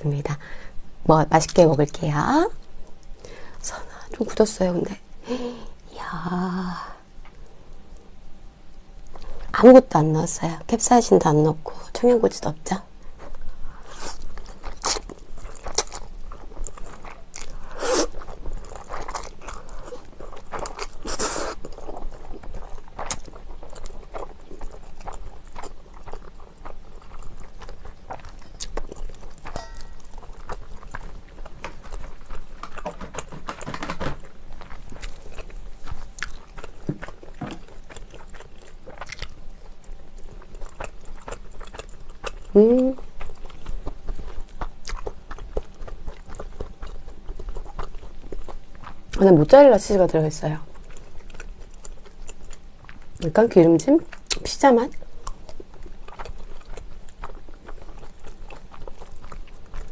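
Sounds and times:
person chewing and biting: 13.1 - 49.2, 50.7 - 53.2, 54.1 - 59.9.

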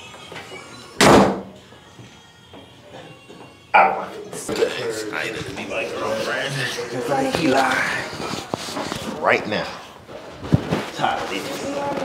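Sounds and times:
door slamming shut: 1.0 - 1.5.

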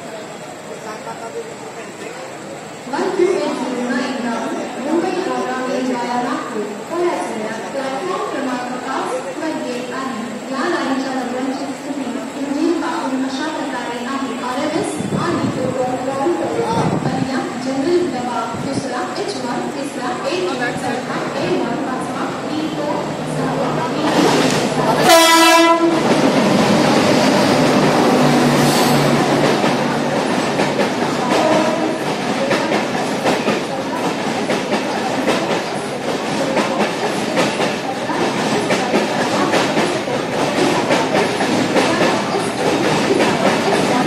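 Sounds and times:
train coaches passing: 0.0 - 44.0
locomotive horn blast: 25.0 - 26.0.

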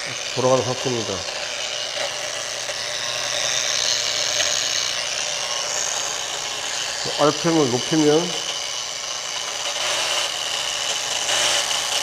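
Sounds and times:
angle grinder whining: 0.0 - 12.0.

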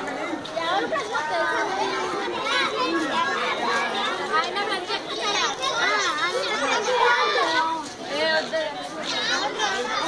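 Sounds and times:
children chattering and calling out: 0.0 - 10.0.

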